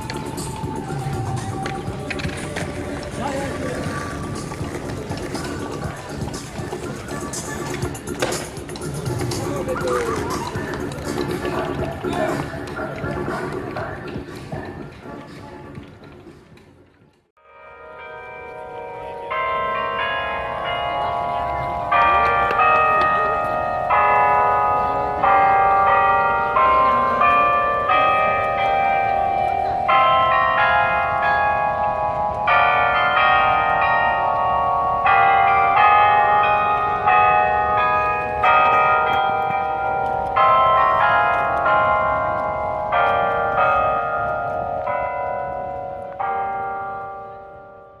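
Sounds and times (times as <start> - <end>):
faint crowd noise: 0.0 - 17.2, 18.1 - 47.9
clock bells playing a tune: 17.5 - 48.0.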